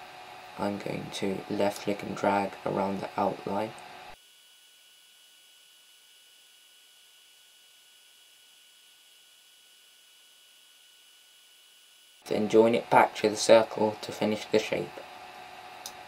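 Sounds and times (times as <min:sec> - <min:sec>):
thin high whine: 0:00.0 - 0:16.0.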